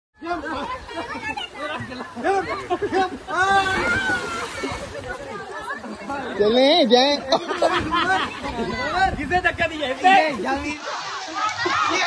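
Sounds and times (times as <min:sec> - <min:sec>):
people chattering: 0:00.2 - 0:12.0.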